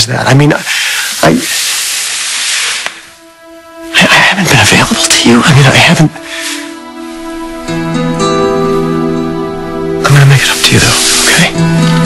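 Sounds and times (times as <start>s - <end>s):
breathy hiss: 0.5s - 4.4s, 6.2s - 9.1s, 10.0s - 12.0s
soft sustained background score note: 0.7s - 12.0s.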